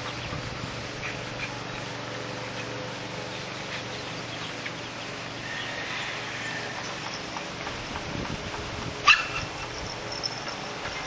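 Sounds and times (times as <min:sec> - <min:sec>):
dog barking: 0:09.1 - 0:09.5.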